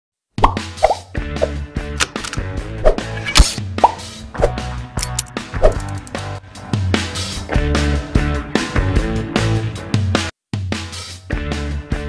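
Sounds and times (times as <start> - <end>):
cartoon plop effects: 0.4 - 1.5
intro music with bass and hits: 1.2 - 12.0.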